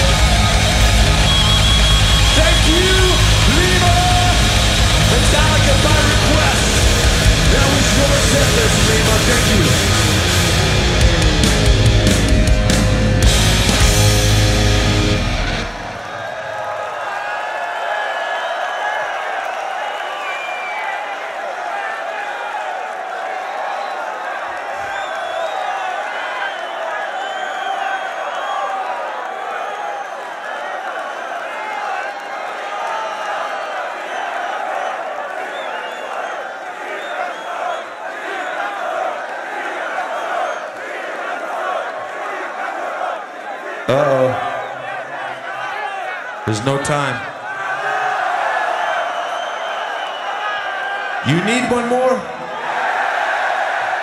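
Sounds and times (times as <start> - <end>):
heavy metal band playing live: 0.0 - 16.0
stadium crowd cheering: 0.0 - 54.0.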